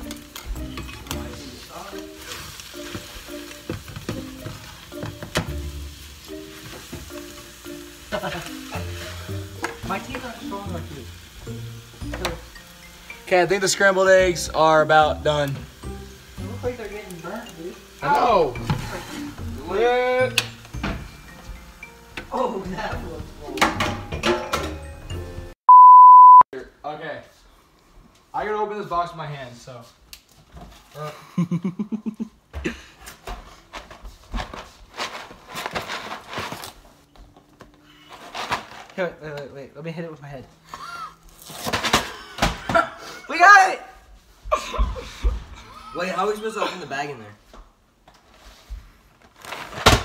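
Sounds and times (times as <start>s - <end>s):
faint background music: 0.0s - 25.6s.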